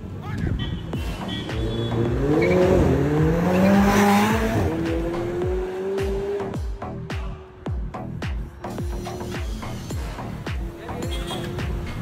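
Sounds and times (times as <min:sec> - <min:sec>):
music with heavy bass beat: 0:00.8 - 0:12.0
car engine accelerating: 0:01.4 - 0:07.0.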